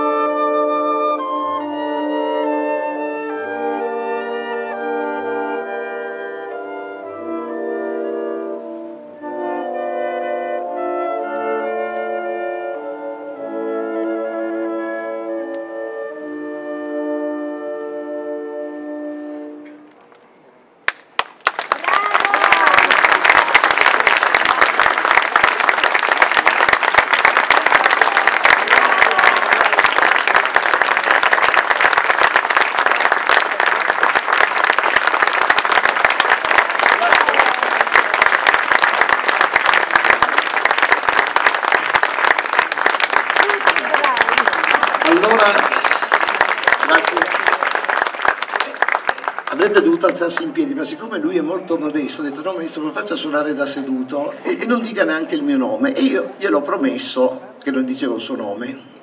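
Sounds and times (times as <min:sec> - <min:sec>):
flute and wind ensemble chord: 0:00.0 - 0:19.9
audience applause: 0:20.9 - 0:50.5.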